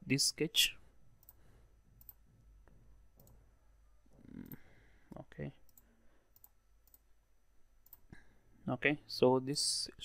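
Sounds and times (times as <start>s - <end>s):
computer mouse clicks: 2.0s - 2.2s, 3.2s - 3.4s, 4.4s - 7.1s, 7.8s - 8.1s.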